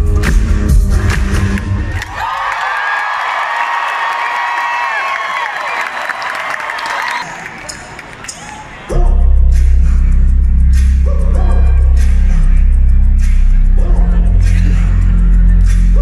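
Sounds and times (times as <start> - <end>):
live pop band with heavy beat: 0.0 - 1.8
crowd cheering and screaming: 1.8 - 8.9.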